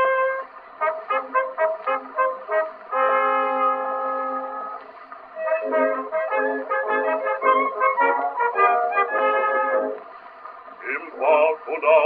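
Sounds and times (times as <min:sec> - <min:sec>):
orchestra sustained chord: 0:00.0 - 0:04.8, 0:05.4 - 0:10.0.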